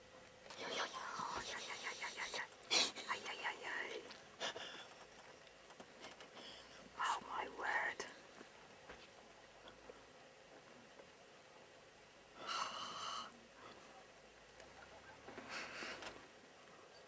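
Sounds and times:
people whispering: 0:00.6 - 0:05.1, 0:06.8 - 0:08.2.

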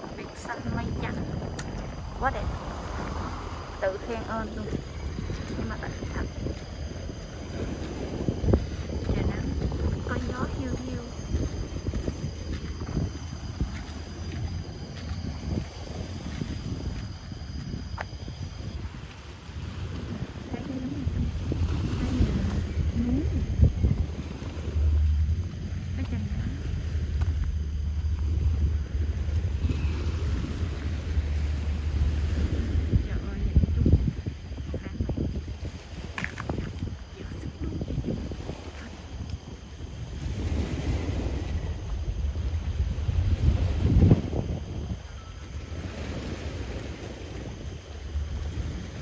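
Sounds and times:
heavy low rumble: 0:00.0 - 0:49.0
wind buffeting microphone: 0:00.0 - 0:49.0.

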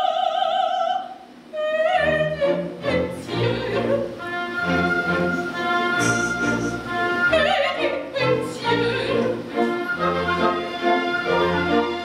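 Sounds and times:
soprano singing: 0:00.0 - 0:12.0
orchestra strings and bass: 0:01.8 - 0:12.0
long high held note: 0:04.7 - 0:07.5.

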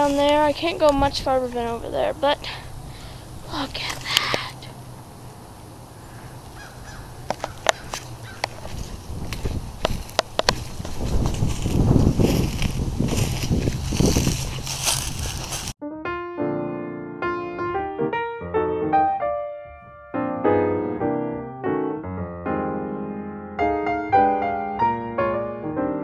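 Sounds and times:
footsteps crunching dry leaves: 0:06.0 - 0:15.8
piano music: 0:15.8 - 0:26.0.

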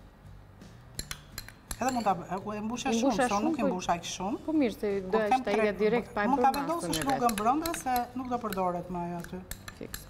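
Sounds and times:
metal spoon clinking on glass bowl: 0:01.0 - 0:03.6, 0:06.4 - 0:10.0.

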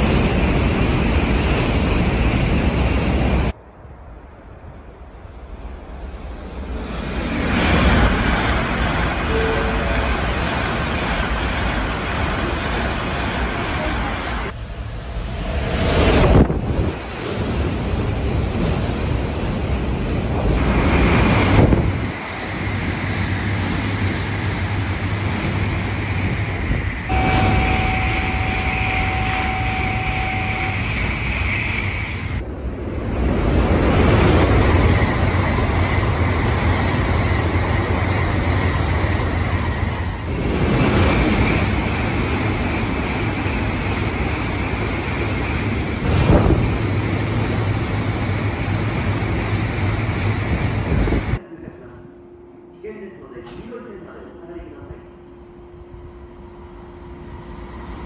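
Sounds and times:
high-speed trains passing: 0:00.0 - 0:58.0
high steady tone: 0:27.0 - 0:32.4, 0:51.4 - 0:58.0.

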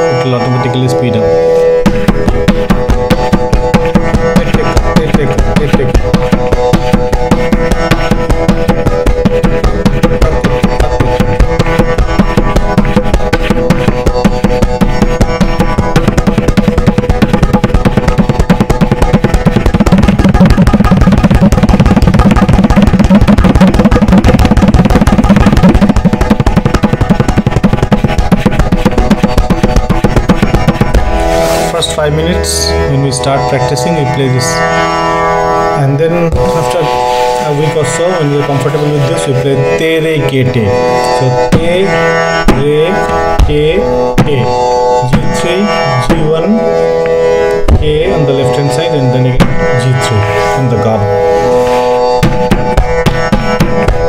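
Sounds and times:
tabla finger strokes: 0:00.0 - 0:54.0.

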